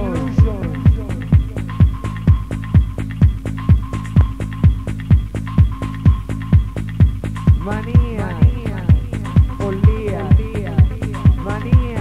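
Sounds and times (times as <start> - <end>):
high synth note: 0.0 - 2.5
held bass line: 0.0 - 12.0
kick drum beat: 0.0 - 12.0.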